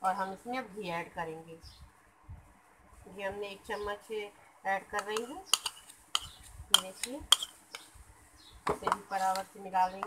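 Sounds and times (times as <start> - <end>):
spoon clinking against steel bowl: 5.0 - 7.9.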